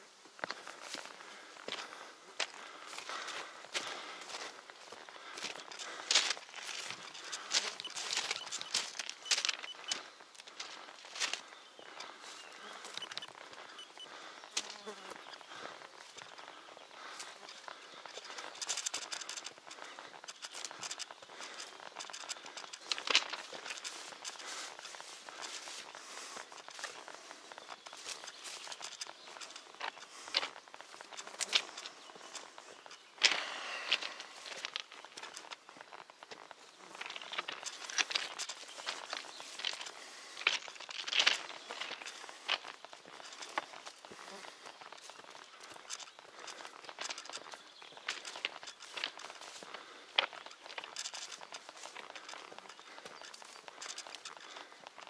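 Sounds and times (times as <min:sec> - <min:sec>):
footsteps on track ballast: 0:00.4 - 0:55.0.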